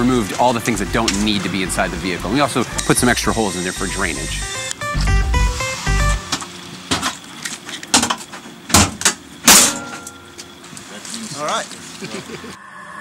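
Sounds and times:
background music with plucked notes: 0.0s - 6.5s
sharp hits: 9.5s - 10.3s.

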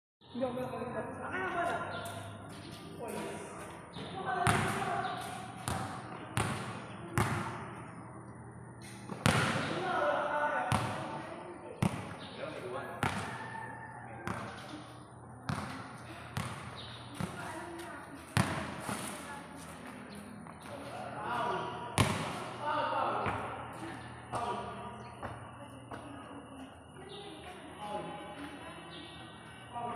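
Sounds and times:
basketball bouncing on concrete: 3.9s - 7.7s, 9.1s - 9.8s, 10.7s - 11.2s, 11.8s - 12.2s, 13.0s - 13.4s, 14.2s - 14.7s, 15.4s - 18.9s, 22.0s - 22.5s.

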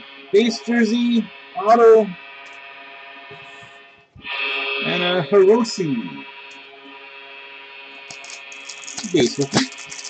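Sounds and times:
foil card pack crinkling: 8.1s - 10.0s.

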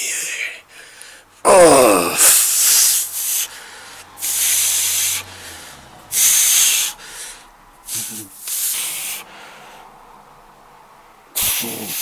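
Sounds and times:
man breathing heavily through nose: 0.0s - 10.0s
loud sniff: 2.2s - 9.9s, 11.4s - 12.0s.

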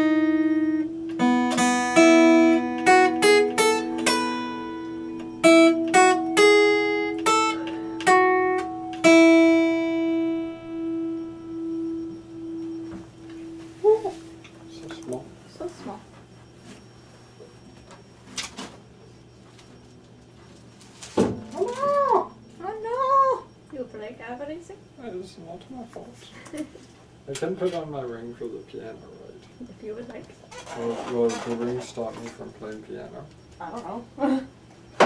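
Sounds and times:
meow-like calls: 21.5s - 23.5s.

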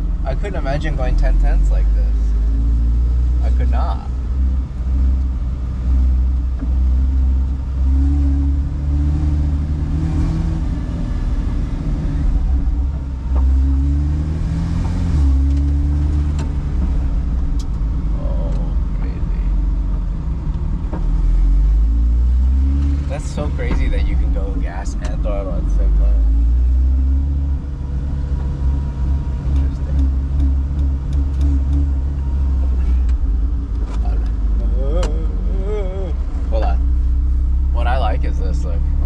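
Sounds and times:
race car engine revving: 0.0s - 39.0s.

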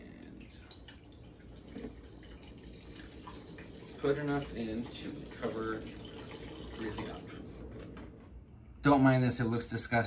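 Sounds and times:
liquid pouring into metal tank: 0.4s - 7.8s.

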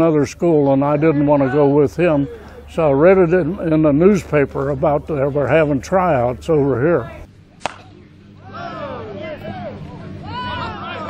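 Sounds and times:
players calling out: 0.0s - 11.0s
bat hitting softball: 7.6s - 8.0s.

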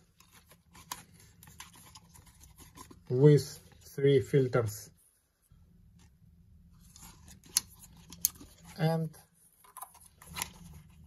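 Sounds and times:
lens filters rubbing and scraping: 0.0s - 3.8s, 6.0s - 8.8s, 9.4s - 11.0s
low steady hum: 0.0s - 11.0s.

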